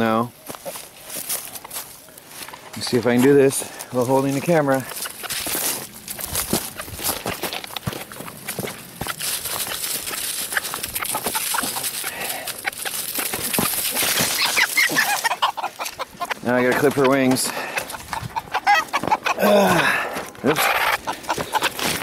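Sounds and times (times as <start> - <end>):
chickens clucking: 0.0 - 22.0
dry leaves crunching: 0.0 - 22.0
scuffling footsteps: 0.0 - 22.0.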